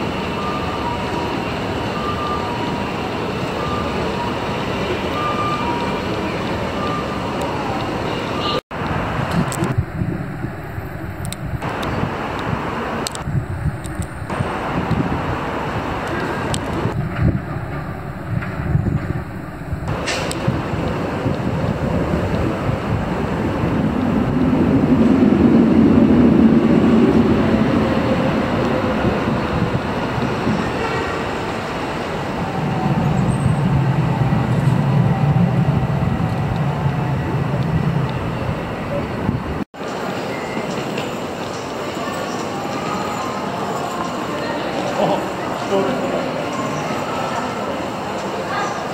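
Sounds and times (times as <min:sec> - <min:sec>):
city street traffic: 0:00.0 - 0:48.9
vehicles passing: 0:00.0 - 0:48.9.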